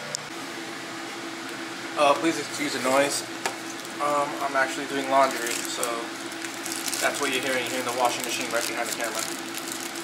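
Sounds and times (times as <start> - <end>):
washing machine running: 0.0 - 10.0.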